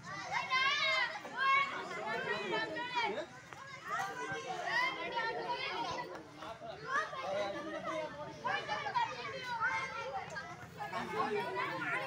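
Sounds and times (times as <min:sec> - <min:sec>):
girls chattering and calling out: 0:00.0 - 0:12.0.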